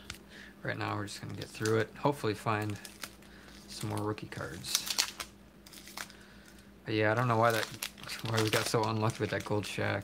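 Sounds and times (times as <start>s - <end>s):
wax paper wrapper crinkling: 1.2s - 10.0s.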